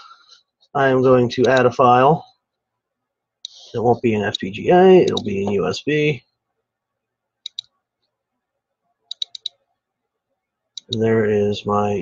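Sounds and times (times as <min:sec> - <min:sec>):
computer mouse clicking: 0:07.4 - 0:07.7, 0:09.1 - 0:09.6.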